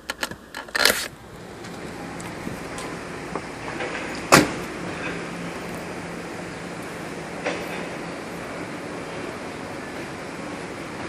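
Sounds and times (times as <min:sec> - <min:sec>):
car door slamming: 0:04.1 - 0:04.7.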